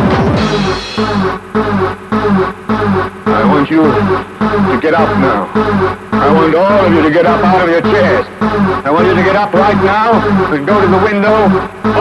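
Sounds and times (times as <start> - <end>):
rave dance track: 0.0 - 12.0
steady bass note: 0.0 - 12.0.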